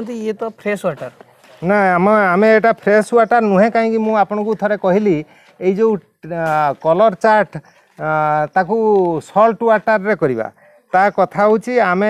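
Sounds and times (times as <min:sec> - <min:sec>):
man talking: 0:00.6 - 0:12.0.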